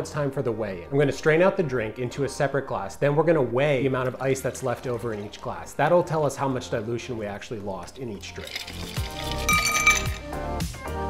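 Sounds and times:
background music with steady beat: 0.0 - 11.0
ice clinking against glass: 8.2 - 10.4.

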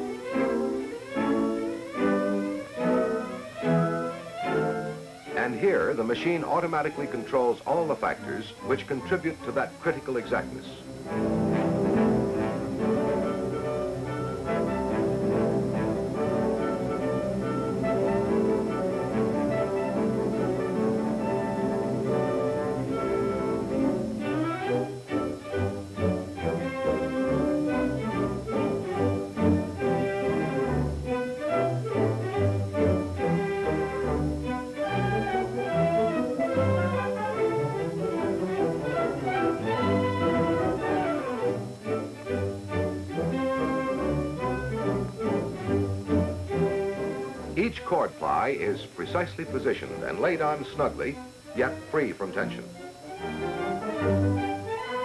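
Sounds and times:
orchestral strings: 0.0 - 55.0.

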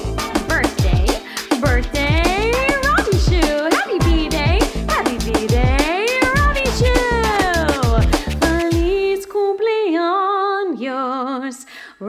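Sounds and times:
steady drum beat: 0.0 - 9.0
upbeat birthday song: 0.0 - 12.0.

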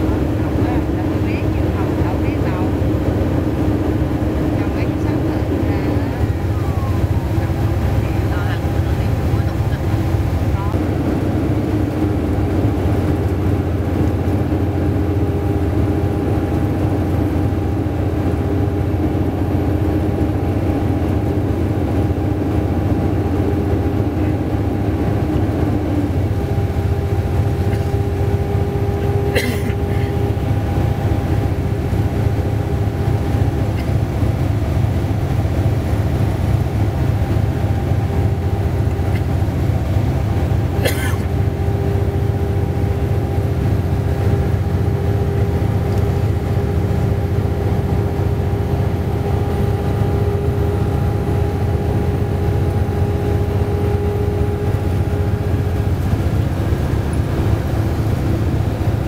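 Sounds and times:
vehicle cabin drone: 0.0 - 59.0.

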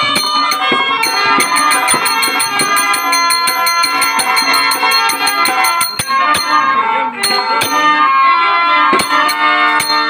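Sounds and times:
fast metallic jingling: 0.0 - 6.6
harmonium chords: 0.0 - 10.0.

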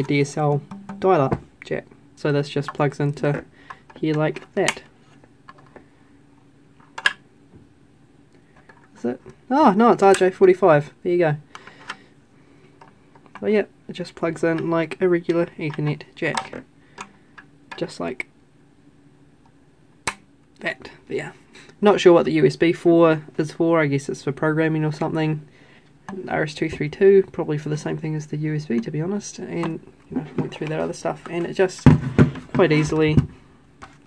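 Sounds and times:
faint steady hum: 0.0 - 34.0.

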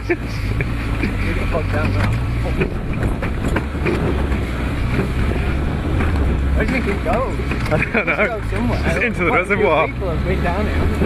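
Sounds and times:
buggy engine droning: 0.0 - 11.0.

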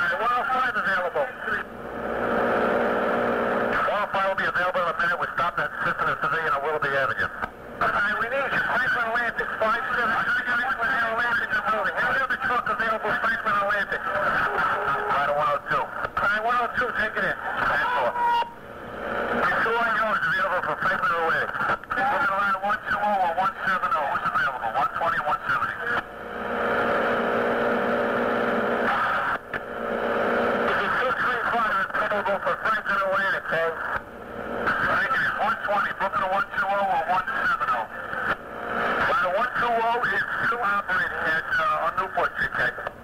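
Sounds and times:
radio channel hiss and hum: 0.0 - 43.0
garbled radio voices: 3.8 - 26.1, 28.8 - 29.4, 30.7 - 42.9.

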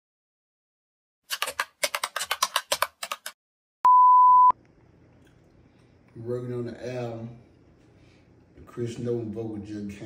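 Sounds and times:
keyboard typing clicks: 1.3 - 3.4
loud steady beep: 3.9 - 4.5.

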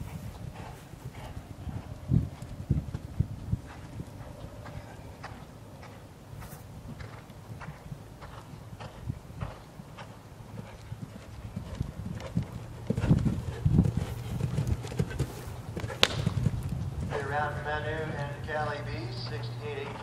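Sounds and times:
horse cantering on sand: 0.0 - 20.0.

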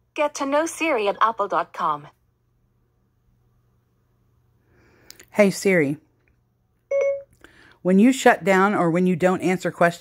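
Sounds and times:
short electronic beep: 6.9 - 7.3.

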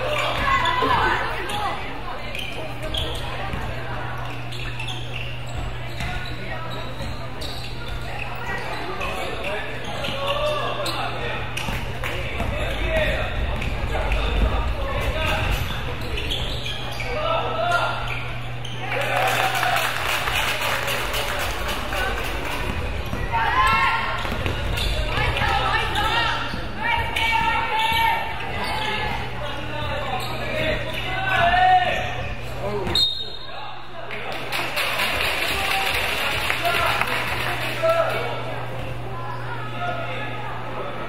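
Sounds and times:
basketball bouncing on wooden court: 22.6 - 25.5.

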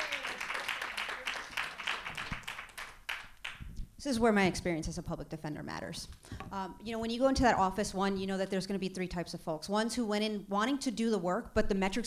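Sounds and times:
audience applause: 0.0 - 3.6.

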